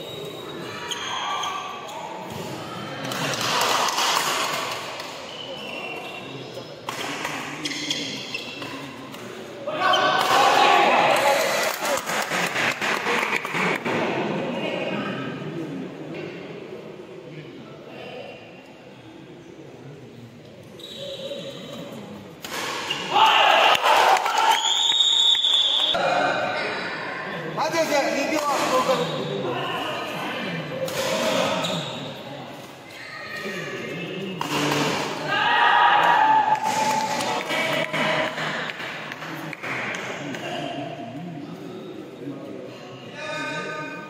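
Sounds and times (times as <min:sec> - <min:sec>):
people shouting: 0:23.1 - 0:24.7, 0:35.2 - 0:37.2.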